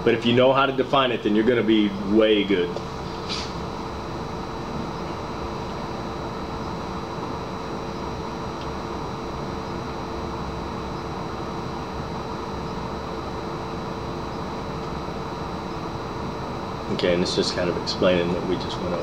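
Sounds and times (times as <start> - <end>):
ventilation fan hum: 0.0 - 19.0.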